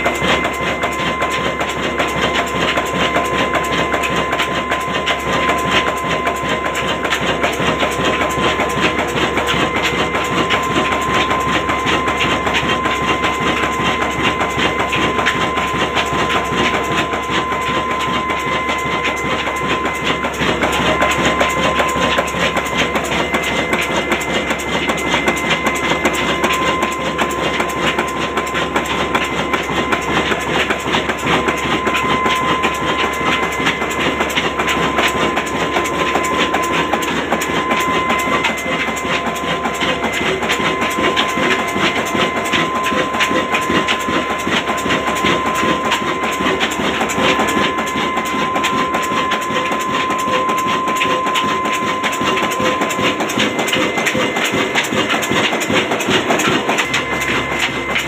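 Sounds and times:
diesel engine clattering: 0:00.0 - 0:58.0
whistle-like tone: 0:00.0 - 0:58.0.

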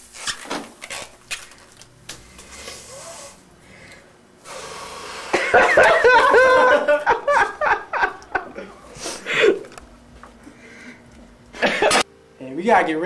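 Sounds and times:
wheezy breathing into plastic bag: 0:01.4 - 0:05.4, 0:08.8 - 0:09.6
laughter: 0:05.4 - 0:08.7, 0:11.6 - 0:12.0.

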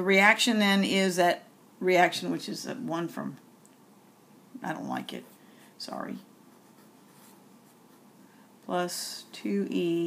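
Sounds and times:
marker pen scratching on paper: 0:06.5 - 0:08.1.

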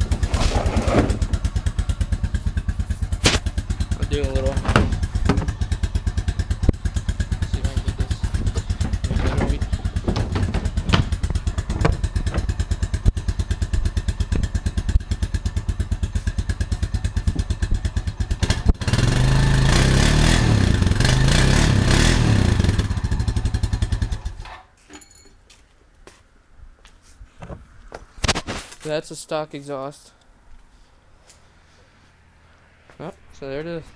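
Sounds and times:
engine idling and revving: 0:00.0 - 0:24.5.

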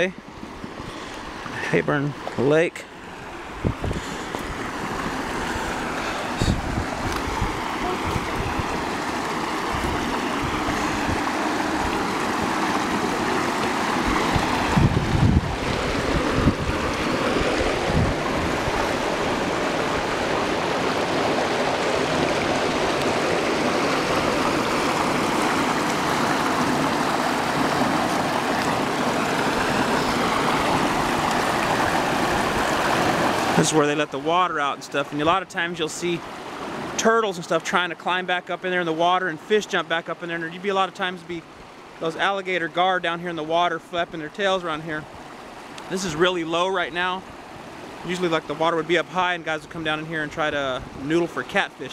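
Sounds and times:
water rushing through spillway: 0:00.0 - 0:51.9
wind gusts on microphone: 0:03.1 - 0:33.6, 0:50.4 - 0:51.1.

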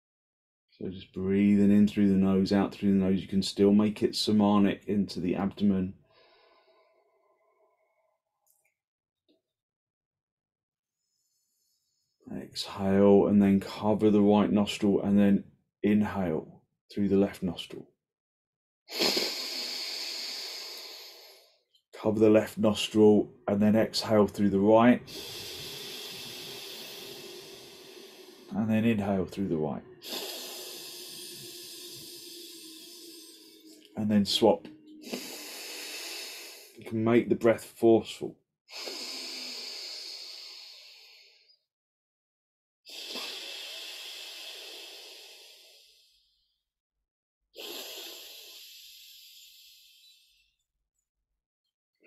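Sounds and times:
man inhaling through nose: 0:06.0 - 0:07.1, 0:18.9 - 0:21.6, 0:25.0 - 0:36.8, 0:38.7 - 0:41.6, 0:42.9 - 0:46.4, 0:47.6 - 0:50.4
forceful breath through nostril: 0:18.9 - 0:21.6, 0:25.0 - 0:28.6, 0:29.9 - 0:33.9, 0:34.6 - 0:36.8, 0:38.7 - 0:41.5, 0:42.9 - 0:46.4, 0:47.6 - 0:50.2.

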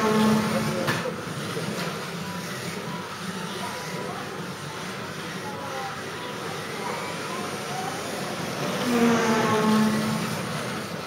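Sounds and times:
toy car electric motors whining: 0:01.4 - 0:11.0.

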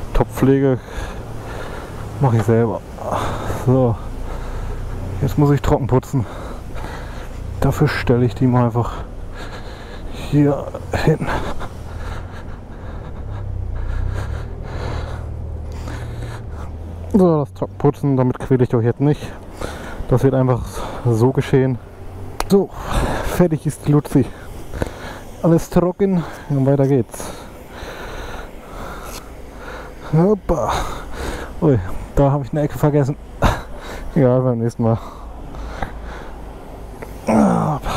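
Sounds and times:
heavy breathing: 0:00.8 - 0:02.2, 0:03.0 - 0:05.2, 0:06.2 - 0:07.6, 0:08.8 - 0:17.1, 0:19.3 - 0:20.1, 0:24.3 - 0:25.4, 0:26.1 - 0:32.2, 0:33.2 - 0:34.2, 0:34.9 - 0:37.9.

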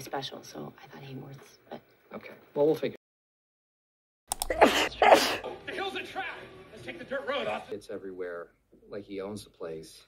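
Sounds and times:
person sneezing: 0:04.5 - 0:05.5.

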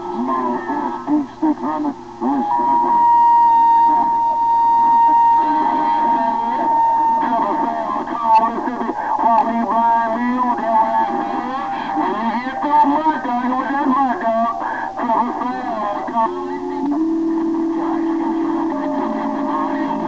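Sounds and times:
garbled radio voices: 0:00.0 - 0:20.0
steady radio whistle: 0:00.0 - 0:20.0.

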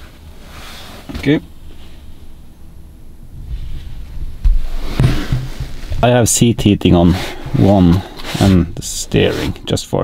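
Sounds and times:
rustling: 0:03.4 - 0:06.4
thump: 0:04.4 - 0:06.0.

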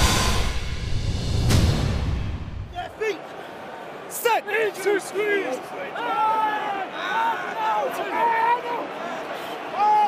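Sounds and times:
broadcast title music: 0:00.0 - 0:02.7.

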